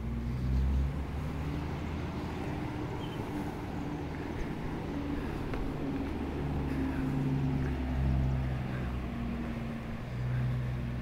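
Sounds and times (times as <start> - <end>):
car engine low rumble: 0.0 - 11.0.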